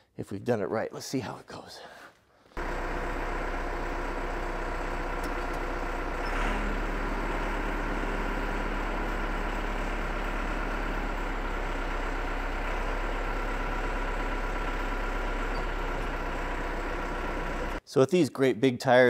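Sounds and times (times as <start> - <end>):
tractor engine idling: 2.6 - 17.8.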